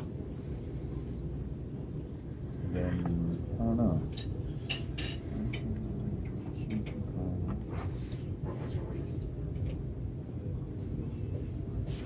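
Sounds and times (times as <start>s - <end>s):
low room hum: 0.0s - 12.0s
cutlery and dishes clinking: 4.1s - 5.6s.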